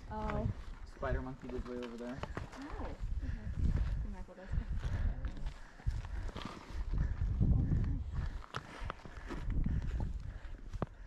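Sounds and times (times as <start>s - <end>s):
footsteps on rocky trail: 0.1s - 11.0s.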